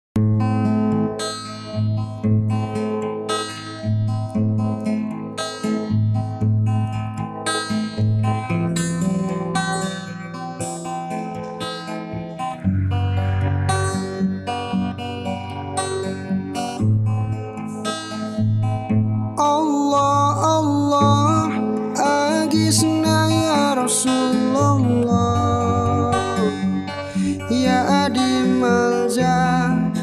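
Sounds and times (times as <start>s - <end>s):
acoustic guitar picked chords: 0.2s - 30.0s
deep bass line: 12.6s - 14.4s.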